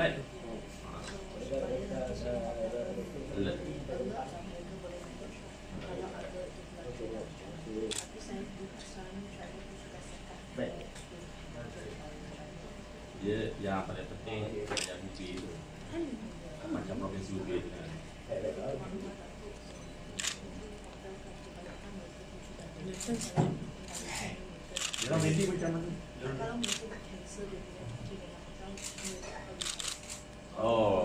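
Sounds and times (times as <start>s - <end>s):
low room hum: 0.0s - 31.0s
people talking quietly: 0.0s - 31.0s.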